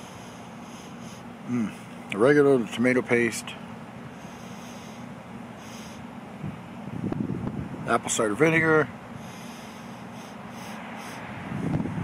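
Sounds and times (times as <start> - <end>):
wind buffeting microphone: 6.4 - 7.9, 11.3 - 12.0.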